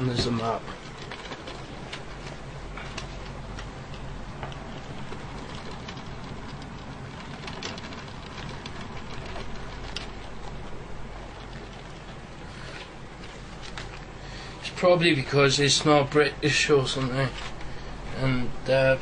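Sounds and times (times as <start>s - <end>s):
soft rustling: 0.0s - 19.0s
steady low hum: 0.0s - 19.0s.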